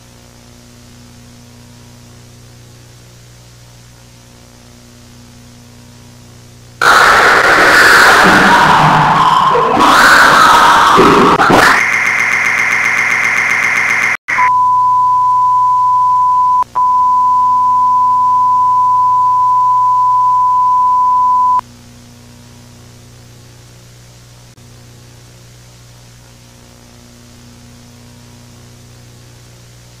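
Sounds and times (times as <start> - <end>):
faint hum and hiss: 0.0 - 6.8, 21.6 - 30.0
harsh electronic buzz: 0.0 - 15.6, 16.4 - 30.0
distorted glitch noise: 6.8 - 14.4
test-tone beep: 14.3 - 21.6.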